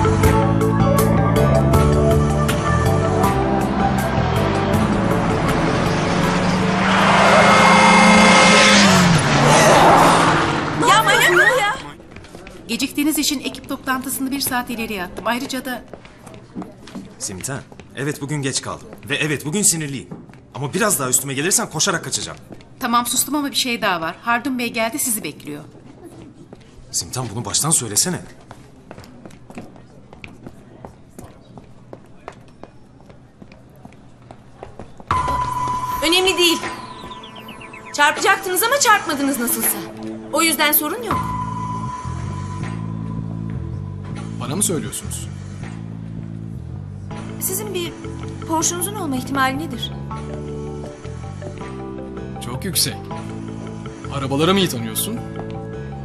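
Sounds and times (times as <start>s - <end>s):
tire screech: 4.0s - 11.8s.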